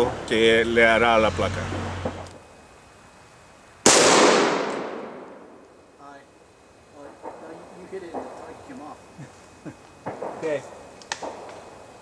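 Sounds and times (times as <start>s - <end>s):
rifle shot with echo: 3.9s - 5.6s.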